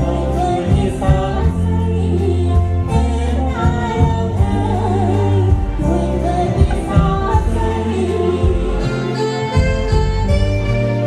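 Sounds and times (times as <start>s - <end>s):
live band dance music: 0.0s - 11.0s
strong bass line: 0.0s - 11.0s.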